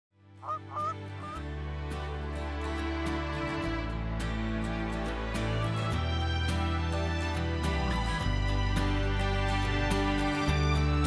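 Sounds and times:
soft instrumental music: 0:00.2 - 0:11.0
goose-like honks: 0:00.4 - 0:01.4.

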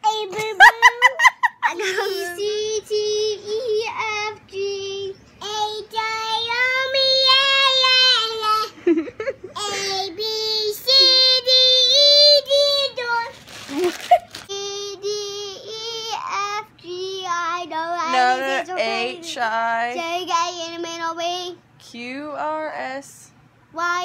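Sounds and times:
young child singing: 0:01.7 - 0:08.7, 0:09.6 - 0:13.6, 0:14.5 - 0:19.3.

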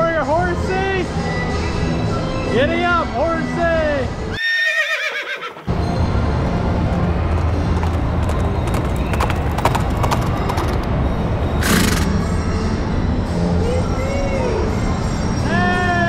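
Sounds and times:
carousel music: 0:00.0 - 0:16.0
horse whinny: 0:04.3 - 0:05.7, 0:11.6 - 0:12.2
ride noise: 0:05.7 - 0:12.4
clip-clop clicks: 0:06.4 - 0:10.9.

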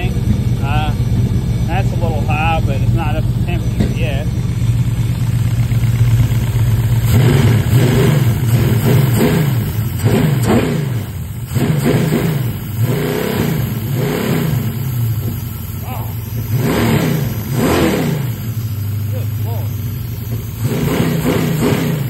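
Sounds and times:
engine revving: 0:00.0 - 0:22.0.

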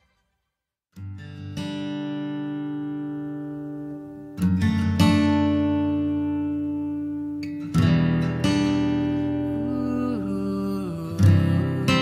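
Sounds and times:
acoustic guitar chord strummed: 0:00.0 - 0:12.0.

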